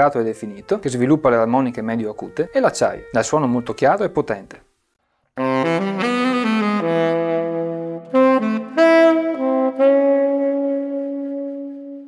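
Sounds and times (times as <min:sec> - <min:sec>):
saxophone melody: 0:00.4 - 0:04.2, 0:05.4 - 0:12.0.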